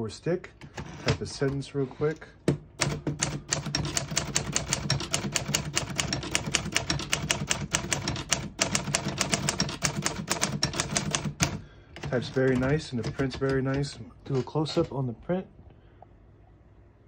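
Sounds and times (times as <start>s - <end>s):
typewriter key strikes: 2.8s - 14.9s.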